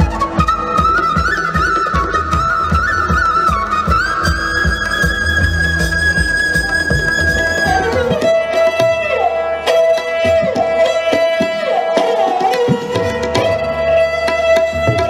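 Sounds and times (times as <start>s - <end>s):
sarangi sliding bowed notes: 0.0s - 15.0s
tabla drumming: 0.0s - 15.0s.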